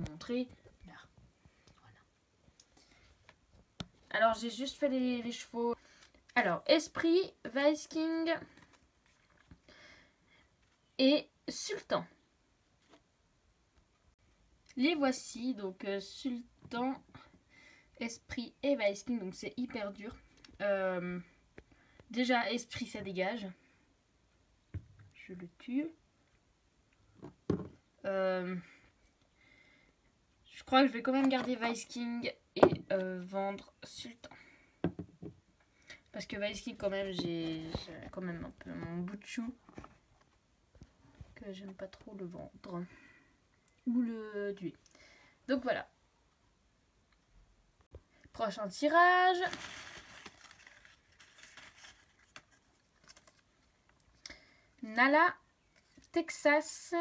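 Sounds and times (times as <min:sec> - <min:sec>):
plastic figurines knocking on wood: 0:27.2 - 0:27.8, 0:32.6 - 0:32.9, 0:34.8 - 0:35.4.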